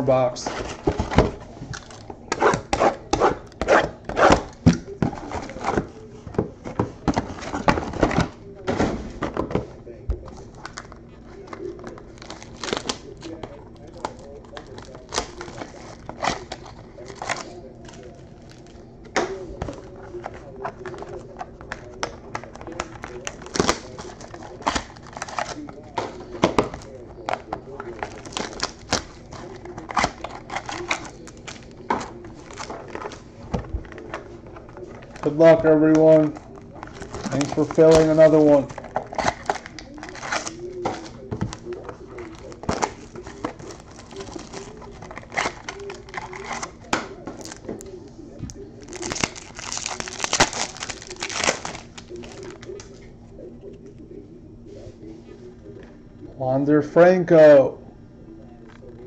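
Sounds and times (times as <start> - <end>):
foil packs rustling: 10.3 - 47.6, 48.7 - 53.0.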